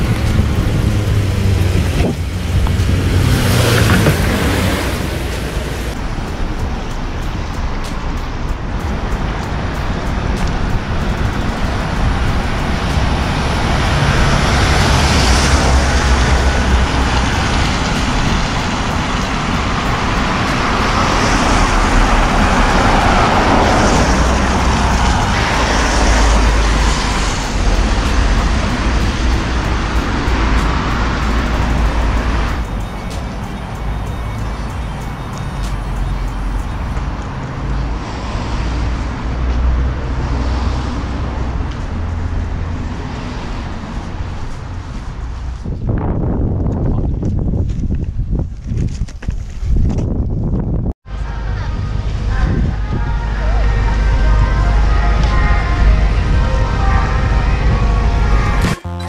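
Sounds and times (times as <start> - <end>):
passing cars: 0.0 - 48.5, 49.8 - 59.0.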